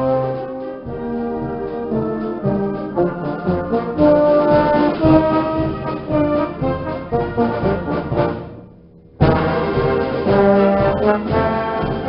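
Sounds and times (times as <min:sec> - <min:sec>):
brass and trombones: 0:00.0 - 0:12.0
concert band playing a march: 0:00.0 - 0:12.0.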